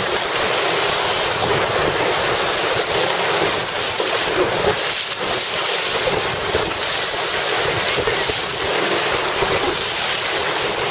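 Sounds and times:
river water rushing and splashing: 0.0 - 10.9
wind noise on microphone: 0.0 - 10.9.

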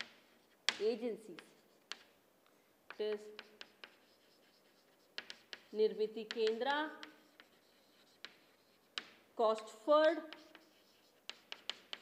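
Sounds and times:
chalk scratching on chalkboard: 0.0 - 2.2, 2.9 - 12.0
chalk tapping on board: 0.0 - 2.2, 2.9 - 9.3, 10.0 - 12.0.

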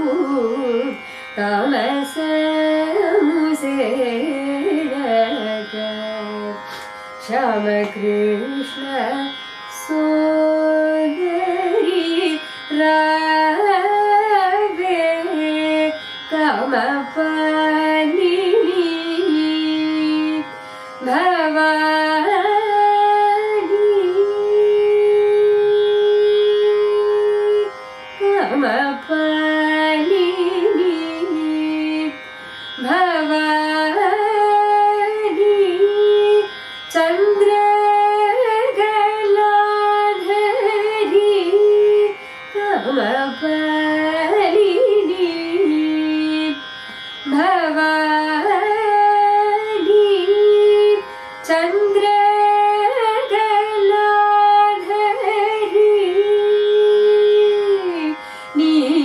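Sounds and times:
tanpura drone: 0.0 - 59.0
woman singing classical music: 0.0 - 59.0.

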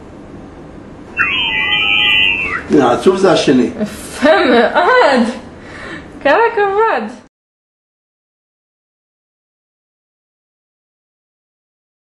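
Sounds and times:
gliding tones: 1.2 - 2.8
hissy high band: 1.2 - 3.0
short steady high tones: 1.2 - 3.0.

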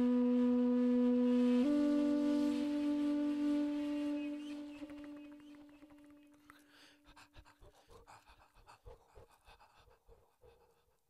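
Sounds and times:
low flute note: 0.0 - 6.2
faint breaths: 6.2 - 11.0.

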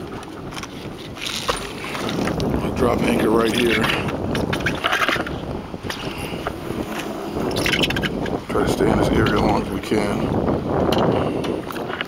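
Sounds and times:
water lapping at boat hull: 0.0 - 12.0
wind buffeting microphone: 0.0 - 12.0.

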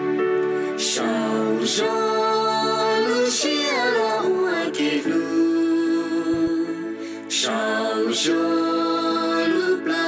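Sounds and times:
breath: 6.9 - 7.3.

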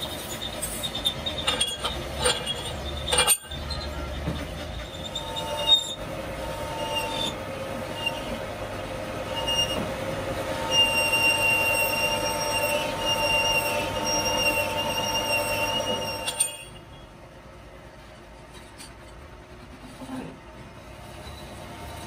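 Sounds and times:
high metallic squeal and ringing: 0.0 - 8.5, 9.2 - 17.1, 21.0 - 22.0
metal lathe running: 0.0 - 17.0.

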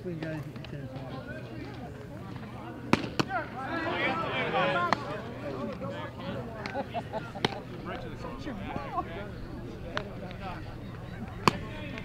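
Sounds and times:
spectators shouting: 3.2 - 12.0
baseball cracking into glove: 11.3 - 12.0.

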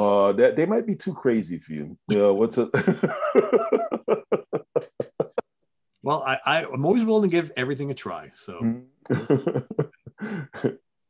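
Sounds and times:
man laughing: 2.1 - 5.4, 9.1 - 10.8.

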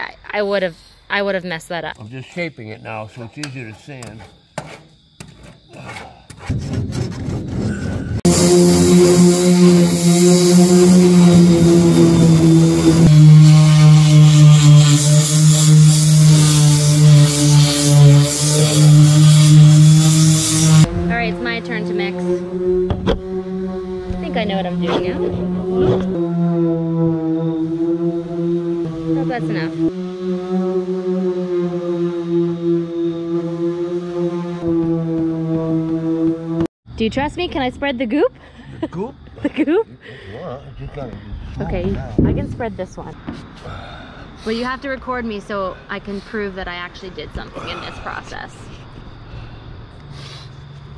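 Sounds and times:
electric sander hissing: 7.3 - 36.7.

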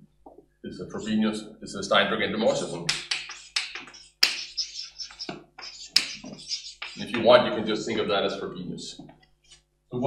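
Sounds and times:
chalk writing on blackboard: 2.9 - 7.3.

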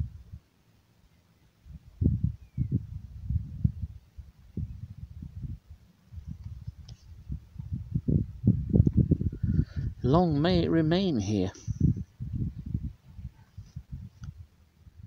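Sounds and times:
wind buffeting microphone: 0.0 - 0.4, 1.6 - 15.0.

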